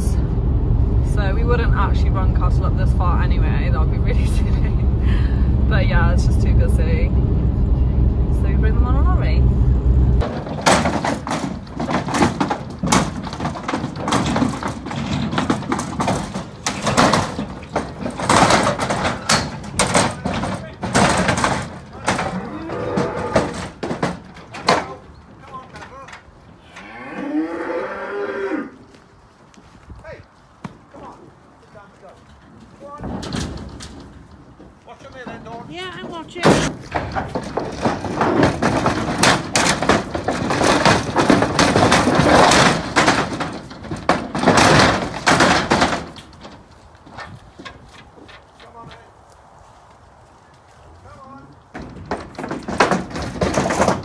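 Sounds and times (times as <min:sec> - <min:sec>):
loud irregular clattering: 0:00.0 - 0:26.3, 0:32.9 - 0:49.0, 0:51.7 - 0:54.0
cattle mooing: 0:22.2 - 0:23.6, 0:26.6 - 0:28.9.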